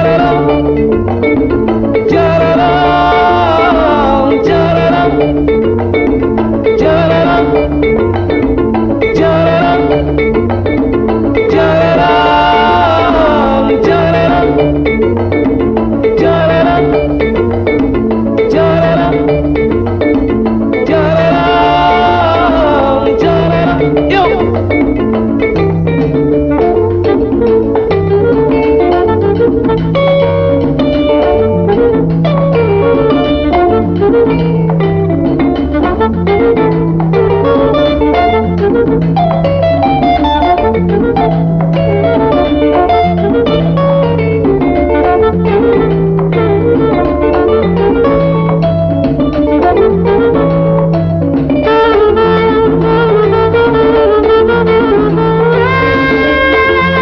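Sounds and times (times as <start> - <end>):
percussion: 0.0 - 57.0
plucked-string melody: 0.0 - 57.0
repeating bass figure: 0.0 - 57.0
wind instruments: 0.0 - 57.0.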